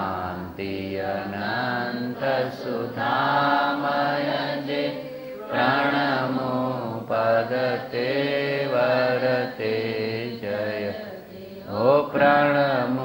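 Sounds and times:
devotional chant with held notes: 0.0 - 13.0.

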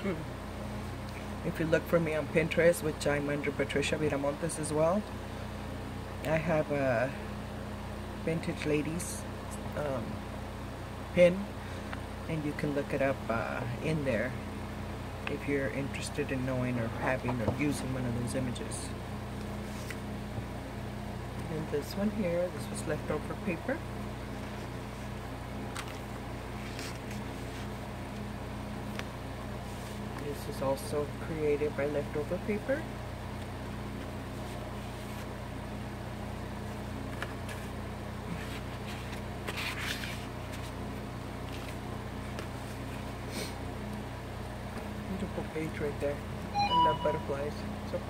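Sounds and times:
machinery hum: 0.0 - 48.0
paper pages rustling: 19.4 - 20.1, 24.3 - 28.2, 33.4 - 35.4, 36.6 - 43.1.

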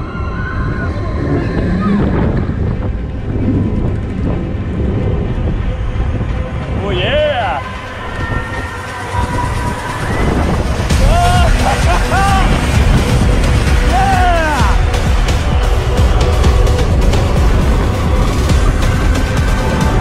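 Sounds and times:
coaster wheels rumbling: 0.0 - 20.0
wind rushing on microphone: 0.0 - 20.0
rider screaming: 13.9 - 14.8.

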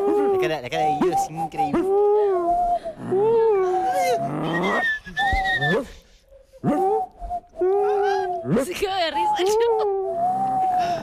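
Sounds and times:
person making wordless wavering sounds: 0.0 - 11.0.

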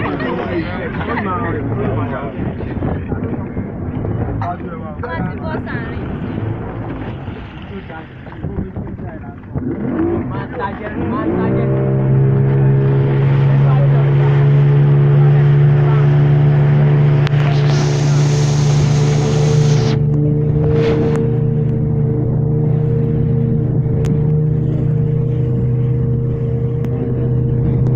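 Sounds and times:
motorboat engine running: 0.0 - 27.9
hiss of spray or wind: 17.5 - 20.0.

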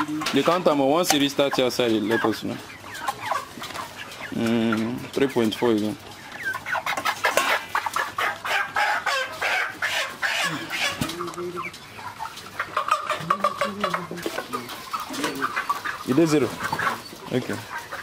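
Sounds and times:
chickens clucking: 0.0 - 18.0.

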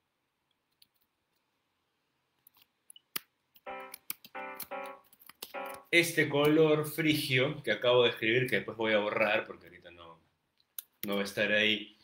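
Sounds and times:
sharp computer clicks: 3.0 - 6.6
short keyboard chords: 3.7 - 6.2.

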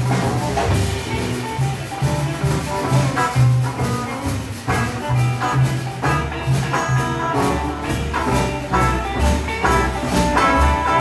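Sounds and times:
live blues rock band: 0.0 - 11.0
walking double bass: 0.0 - 11.0.

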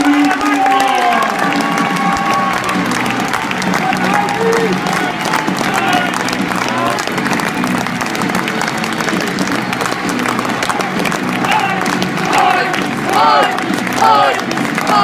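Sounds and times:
loud shouts: 0.0 - 3.2, 3.8 - 7.0, 11.4 - 15.0
crowd clapping and cheering: 0.0 - 15.0
voices calling and chanting: 11.4 - 15.0.

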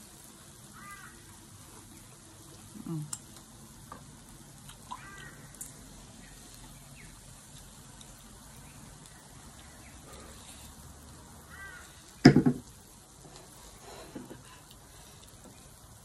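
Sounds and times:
pork sizzling on a grill: 0.0 - 16.0
short bird calls: 0.7 - 1.2, 4.9 - 5.6, 11.5 - 12.0.

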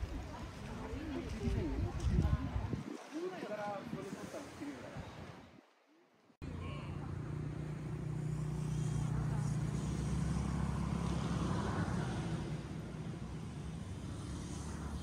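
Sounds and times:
outdoor background noise: 0.0 - 15.0
vehicle engine humming: 6.4 - 15.0.

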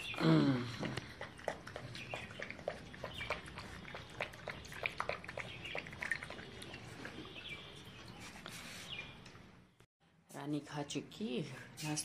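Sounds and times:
puppy chewing and lapping: 0.0 - 8.5.

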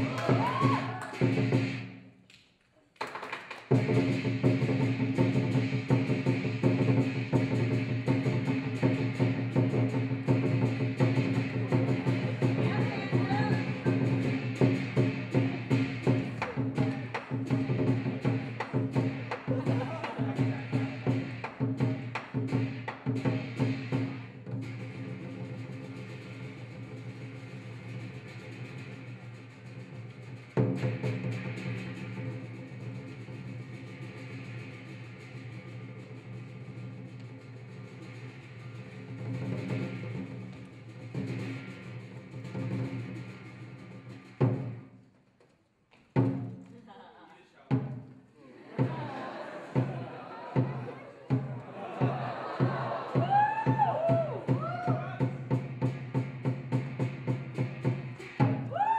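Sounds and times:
drum strikes: 0.0 - 2.0, 3.1 - 44.9, 46.2 - 46.7, 47.7 - 58.9.

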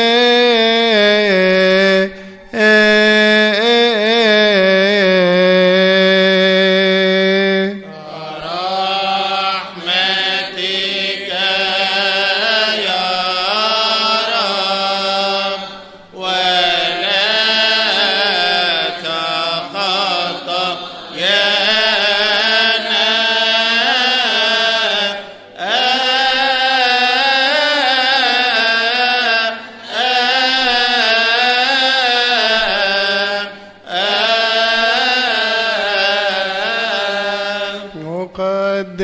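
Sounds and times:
voice singing melismatic chant: 0.0 - 39.0.

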